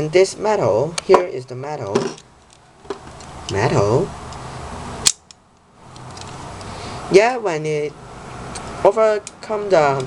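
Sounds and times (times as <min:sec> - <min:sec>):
low steady hiss: 0:00.0 - 0:10.0
sharp click: 0:05.0 - 0:05.4.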